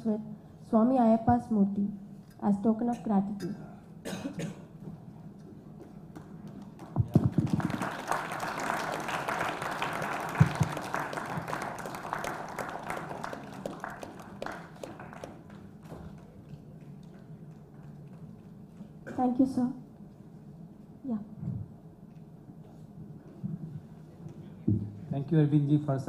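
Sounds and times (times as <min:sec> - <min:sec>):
person coughing: 0:02.9 - 0:04.7
audience applauding: 0:06.1 - 0:17.3.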